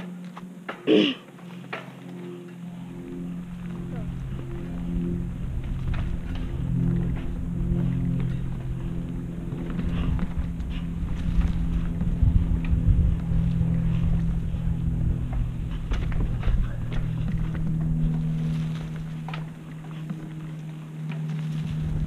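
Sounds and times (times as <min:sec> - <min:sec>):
bike rattling over bumps: 0:00.0 - 0:22.0
rumble of wind and tyres: 0:00.0 - 0:22.0
steady low hum: 0:00.0 - 0:22.0.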